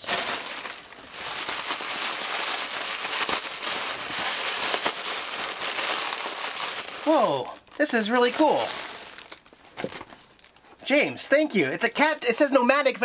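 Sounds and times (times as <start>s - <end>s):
plastic packaging crinkling: 0.0s - 10.8s.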